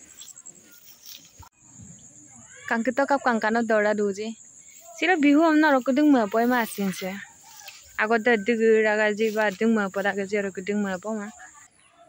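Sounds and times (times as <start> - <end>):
high-pitched insect chorus: 0.0 - 11.8.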